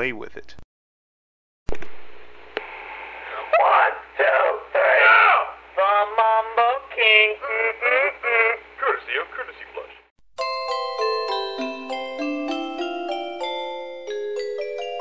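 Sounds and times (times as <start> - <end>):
low hum: 1.7 - 3.4
voice over telephone line: 3.4 - 10.0.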